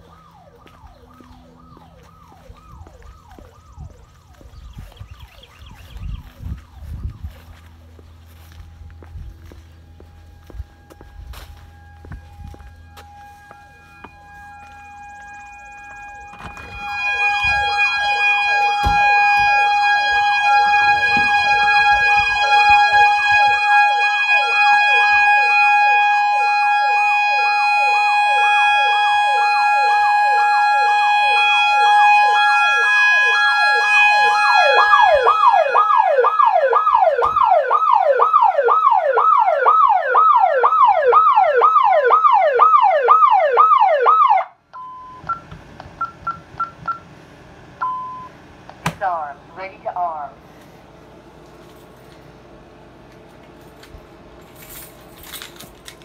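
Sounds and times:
steady high tone: 0:00.0 - 0:40.5
alarm siren warbling: 0:00.0 - 0:47.0.

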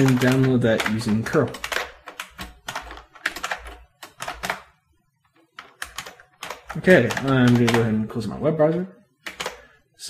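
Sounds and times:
computer keyboard typing: 0:00.0 - 0:08.2, 0:09.2 - 0:09.8.

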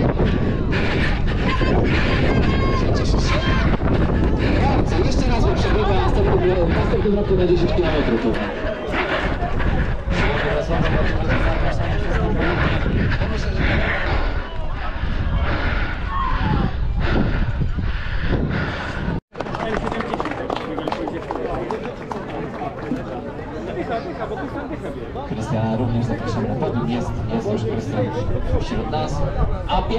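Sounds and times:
people talking: 0:01.3 - 0:15.1, 0:19.5 - 0:29.9.

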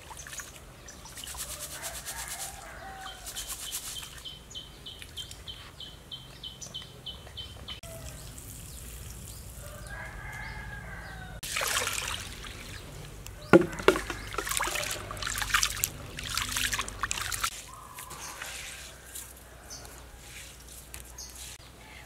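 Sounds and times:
hands splashing rice in water: 0:00.0 - 0:02.6, 0:11.4 - 0:19.2
rooster crowing: 0:01.4 - 0:03.4, 0:09.6 - 0:11.4.

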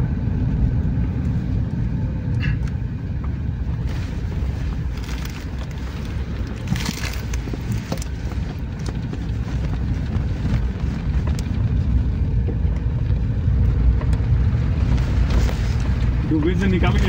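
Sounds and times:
car engine and tyres rumbling: 0:00.0 - 0:17.0.

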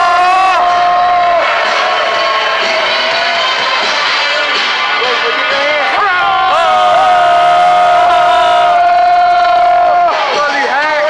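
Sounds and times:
crowd cheering: 0:00.0 - 0:11.0.

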